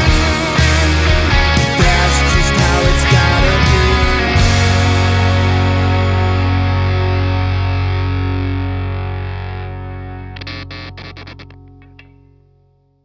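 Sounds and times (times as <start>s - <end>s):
distorted electric guitar chord: 0.0s - 12.8s.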